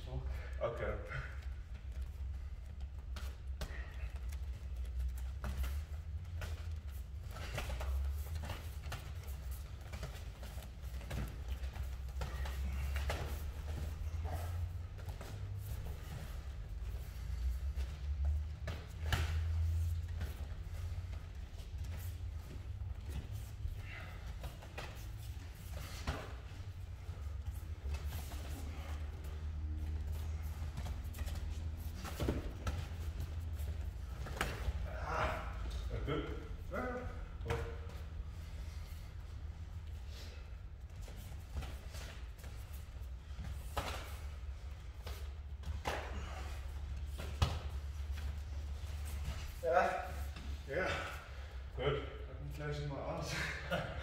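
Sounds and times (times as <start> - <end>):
gloves and feet thudding on mats: 1.8 - 35.9, 40.7 - 51.3.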